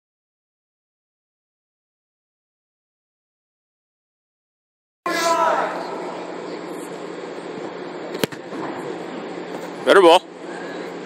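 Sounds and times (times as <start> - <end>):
background hum: 5.1 - 11.0
foot kicking football: 8.2 - 8.5.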